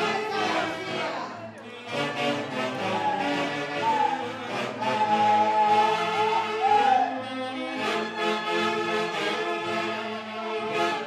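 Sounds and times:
saxophones and clarinets: 0:00.0 - 0:11.0.

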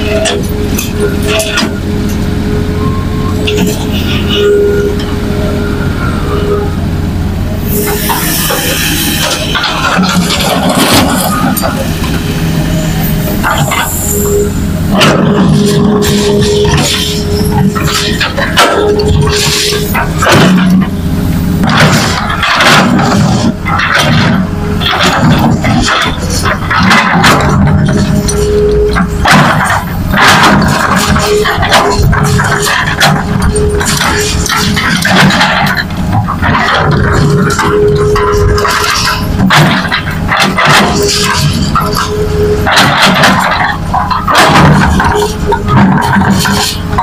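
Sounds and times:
excavator diesel engine under load: 0:00.0 - 0:47.0
hydraulic whine: 0:00.0 - 0:47.0.

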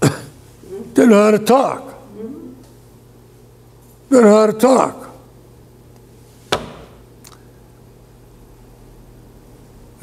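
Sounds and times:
low steady hum: 0:00.0 - 0:10.0
sharp knock: 0:06.5 - 0:07.0.

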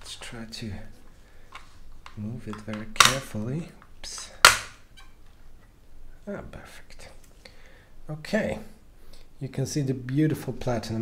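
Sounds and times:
sharp plastic crack: 0:02.0 - 0:03.4, 0:04.1 - 0:04.9.

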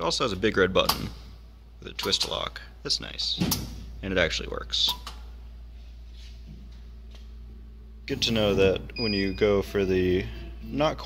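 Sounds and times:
low machine hum with hiss: 0:00.0 - 0:11.0.

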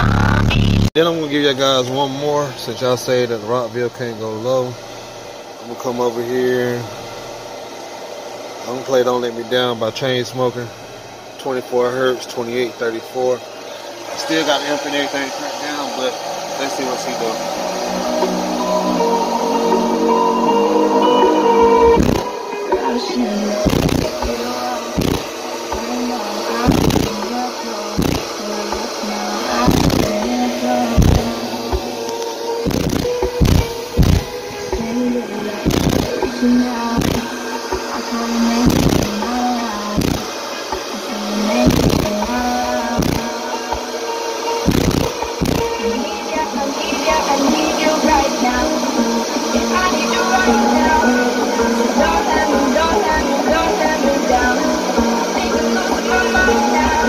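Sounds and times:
bass-heavy pop song: 0:00.0 - 0:01.1, 0:17.6 - 0:57.0.

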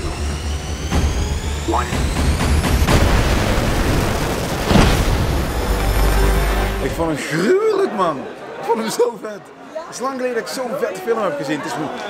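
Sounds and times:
jet engine whine: 0:00.0 - 0:06.9
film music: 0:00.0 - 0:07.2
loud rush of jet noise: 0:00.0 - 0:07.2.

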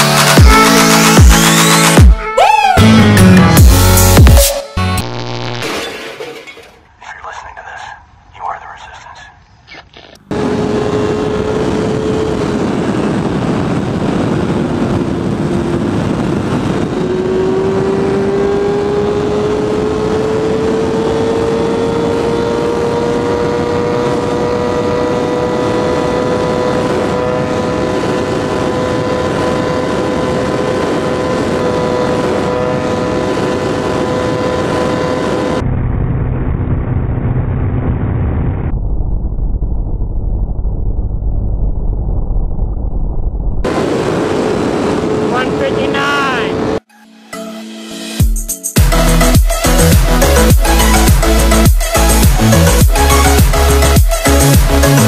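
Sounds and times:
motorcycle engine at high speed: 0:10.2 - 0:38.7, 0:43.6 - 0:45.7, 0:48.8 - 0:55.0
wind rush: 0:10.3 - 0:21.7, 0:26.6 - 0:46.8.

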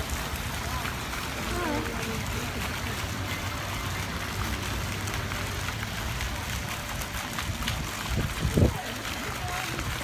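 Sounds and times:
fountain water splashing: 0:00.0 - 0:10.0.

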